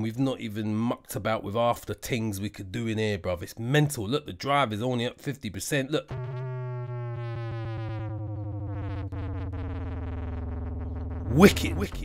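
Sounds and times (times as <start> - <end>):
distorted synth bass note: 6.1 - 12.0.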